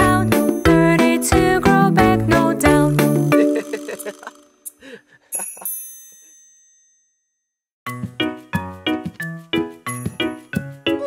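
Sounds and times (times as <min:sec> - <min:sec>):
upbeat children's music: 0:00.0 - 0:04.6, 0:07.9 - 0:11.0
bright high-pitched chime: 0:05.3 - 0:07.4.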